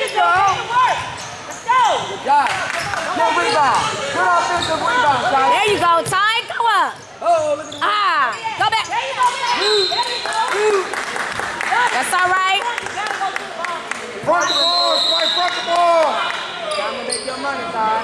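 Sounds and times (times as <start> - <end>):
sneakers squeaking: 0.0 - 10.5, 14.2 - 17.8.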